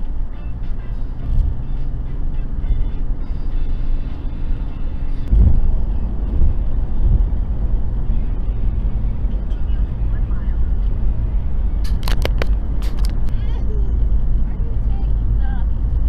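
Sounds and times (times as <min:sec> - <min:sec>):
car road and engine rumble: 0:00.0 - 0:16.0
low thump: 0:05.3 - 0:05.7.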